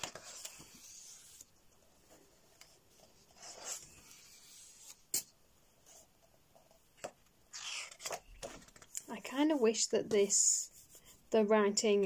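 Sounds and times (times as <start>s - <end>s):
paper page turning: 7.5s - 9.0s.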